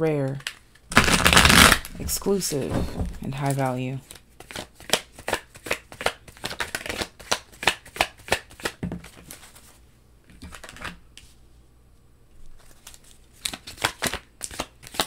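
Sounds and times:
cards shuffled by hand: 0.3 - 2.3, 3.4 - 11.4, 12.5 - 15.0.

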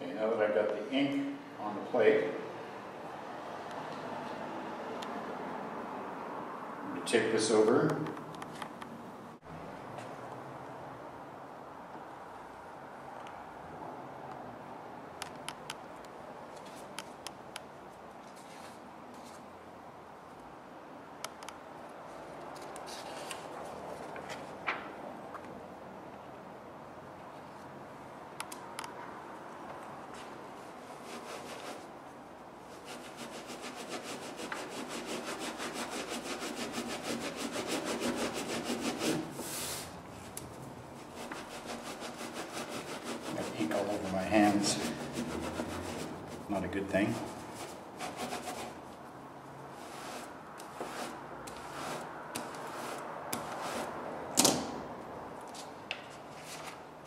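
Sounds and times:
baren rubbing over paper: 30.6 - 31.9, 32.7 - 39.9, 41.0 - 48.9, 49.7 - 54.0.

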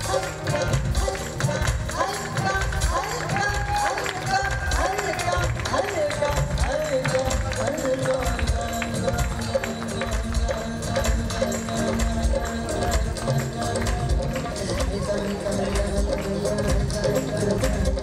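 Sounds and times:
drums and tabla beat: 0.0 - 18.0
woman singing: 0.0 - 18.0.

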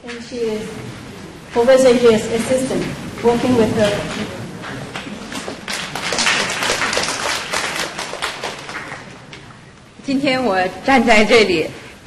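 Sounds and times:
audience applauding: 3.8 - 9.6.

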